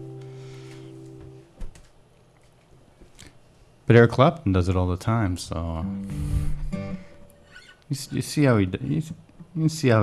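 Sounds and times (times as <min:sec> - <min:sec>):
acoustic guitar chord ringing: 0:00.0 - 0:01.4, 0:05.8 - 0:07.4.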